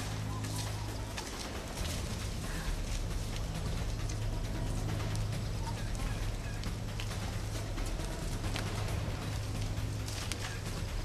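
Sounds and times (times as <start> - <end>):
footsteps on grass: 0.0 - 11.0.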